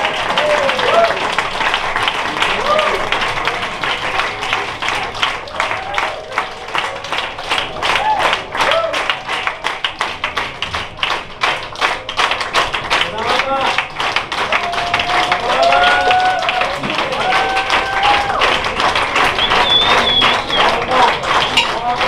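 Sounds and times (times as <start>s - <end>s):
audience applauding: 0.0s - 22.0s.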